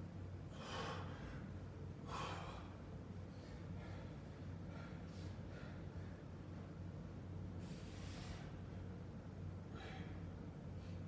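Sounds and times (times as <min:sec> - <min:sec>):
steady low hum: 0:00.0 - 0:11.0
man breathing hard: 0:00.5 - 0:06.7, 0:07.6 - 0:08.7, 0:09.6 - 0:11.0.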